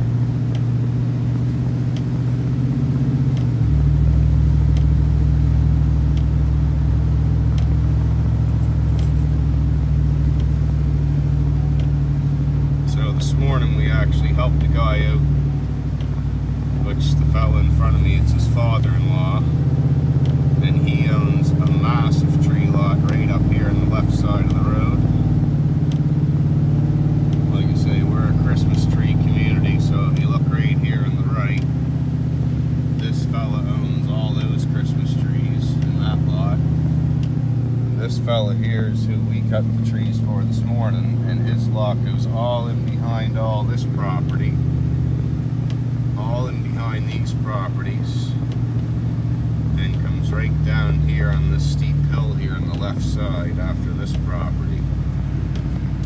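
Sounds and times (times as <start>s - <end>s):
vehicle engine and road noise: 0.0s - 56.0s.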